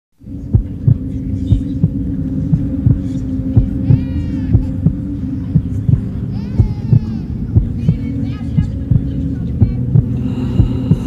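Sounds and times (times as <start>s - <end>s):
low drone: 0.2s - 11.0s.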